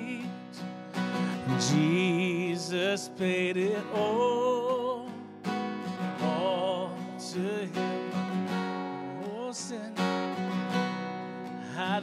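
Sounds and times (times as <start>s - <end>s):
man singing a hymn: 0.0s - 0.4s, 1.2s - 5.2s, 6.1s - 8.2s, 9.1s - 10.0s, 11.6s - 12.0s
acoustic guitar strumming: 0.0s - 12.0s.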